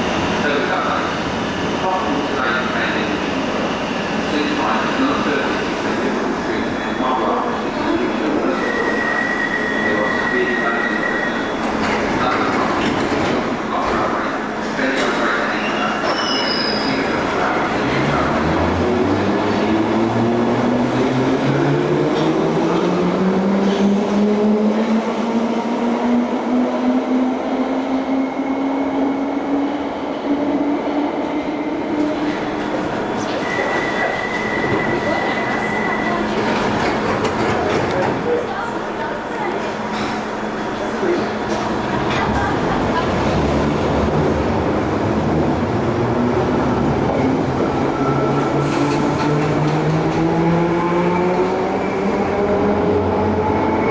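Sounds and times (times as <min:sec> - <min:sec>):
train and platform rumble: 0:00.0 - 0:53.9.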